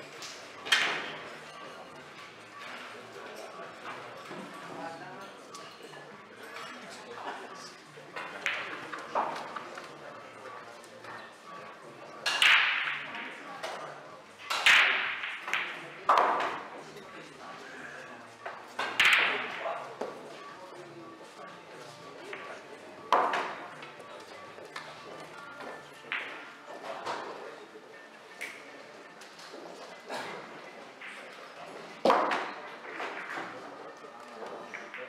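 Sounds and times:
billiard balls clacking: 14.4s - 16.7s, 18.4s - 20.2s, 22.3s - 25.3s, 31.9s - 33.8s.

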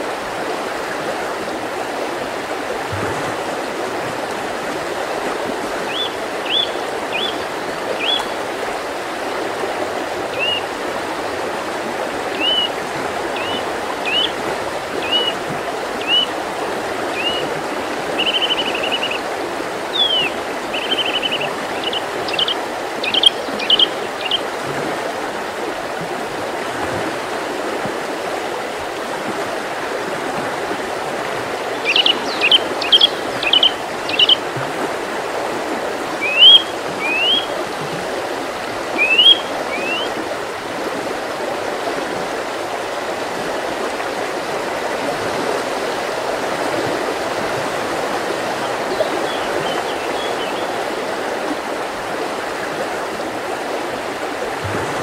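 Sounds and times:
stream water rushing: 0.0s - 55.0s
small bird calls: 5.9s - 8.4s, 10.3s - 10.7s, 12.3s - 12.8s, 13.4s - 14.4s, 15.0s - 15.4s, 16.0s - 16.3s, 17.1s - 17.5s, 18.2s - 19.2s, 19.9s - 24.5s, 31.8s - 34.4s, 36.2s - 37.5s, 39.0s - 40.1s.

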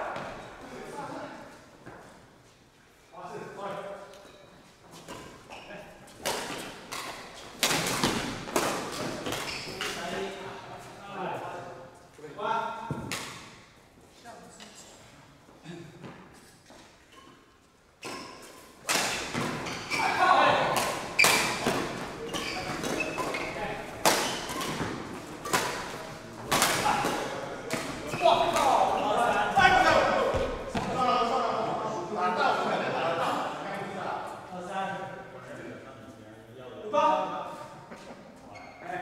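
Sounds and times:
players' voices: 5.0s - 13.1s, 18.9s - 39.0s
rackets striking shuttlecock: 20.6s - 28.8s.

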